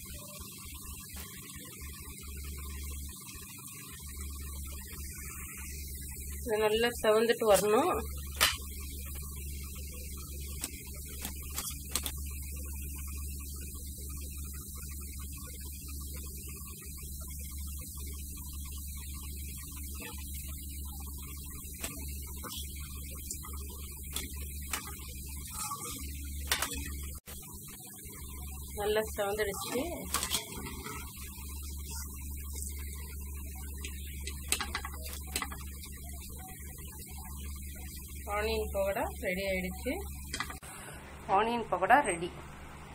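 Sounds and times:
low electrical hum: 0.0s - 42.9s.

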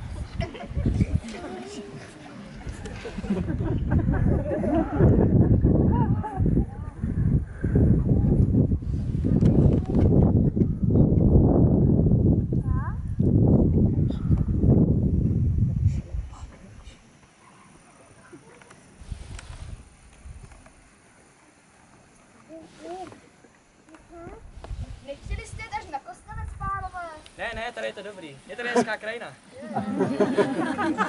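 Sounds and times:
faint outdoor background: 0.0s - 31.0s.

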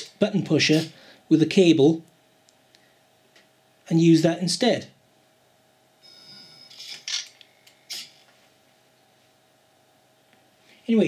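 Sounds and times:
short electronic beep: 6.0s - 6.8s.

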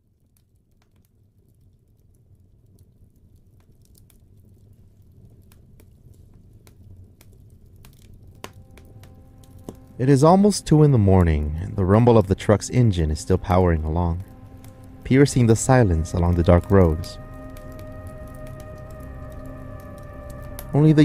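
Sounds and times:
wood fire crackling: 0.0s - 21.0s.

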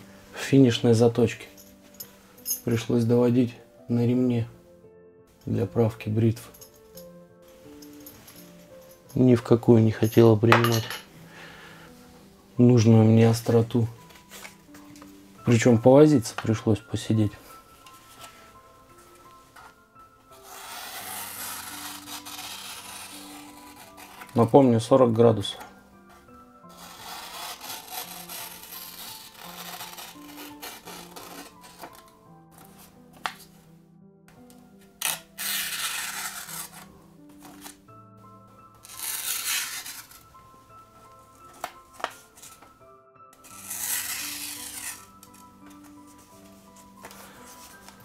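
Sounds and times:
quiet background music: 0.0s - 48.0s
knife slicing paper: 20.4s - 24.5s, 26.7s - 32.0s, 35.0s - 36.9s, 38.8s - 40.2s, 43.5s - 45.2s.

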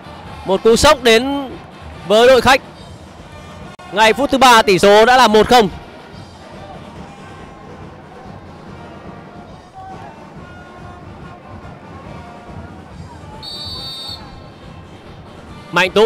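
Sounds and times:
crowd ambience: 0.0s - 16.0s
faint music: 0.0s - 16.0s
shrill whistle blast: 13.4s - 14.5s.

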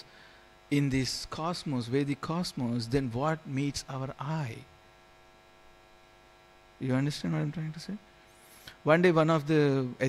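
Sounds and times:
electrical mains hum: 0.0s - 10.0s
man speaking: 0.7s - 4.7s, 6.8s - 8.0s, 8.8s - 10.0s.

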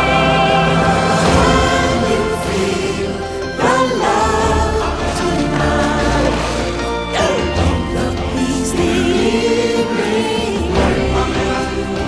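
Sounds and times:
orchestral film music: 0.0s - 12.0s.

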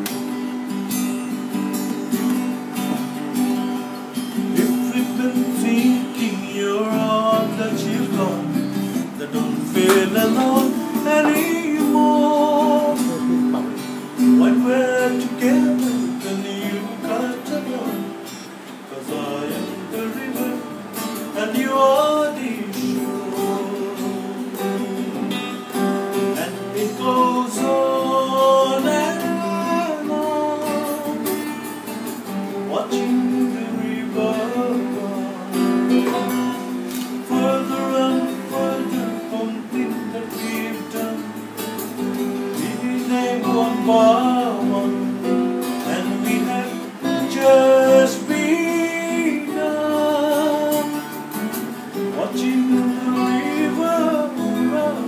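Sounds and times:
acoustic guitar: 0.0s - 55.0s
man singing: 4.2s - 41.6s, 42.3s - 55.0s.

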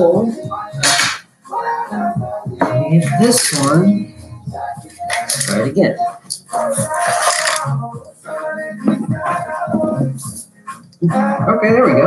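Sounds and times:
background music: 0.0s - 12.0s
spray can hiss: 6.6s - 7.7s.

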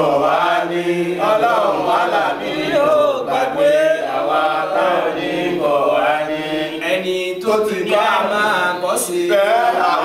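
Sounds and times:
men chanting together: 0.0s - 10.0s.

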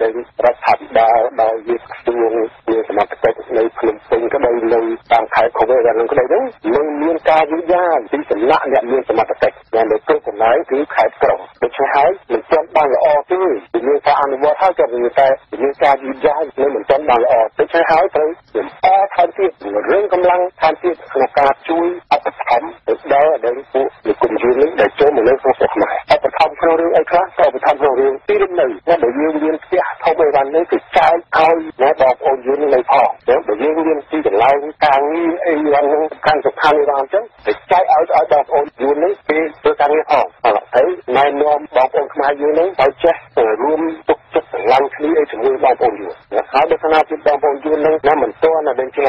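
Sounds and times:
news reader talking on radio: 0.0s - 49.0s.

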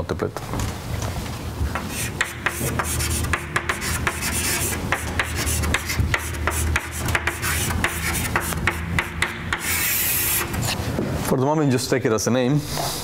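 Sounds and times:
chalk tapping on blackboard: 1.7s - 10.8s
chalk scraping stroke: 1.8s - 10.9s.

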